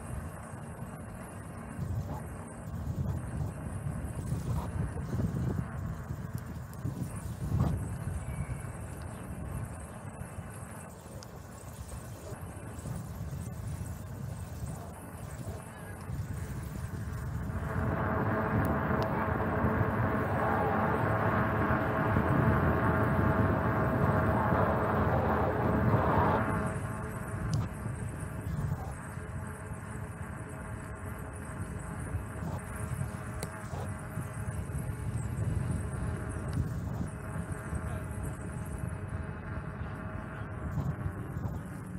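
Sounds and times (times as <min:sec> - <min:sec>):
steady buzz of pitched tones: 0:00.0 - 0:41.9
wind on microphone: 0:01.7 - 0:29.6, 0:31.4 - 0:41.9
bicycle tyres rumbling on asphalt: 0:01.8 - 0:29.4.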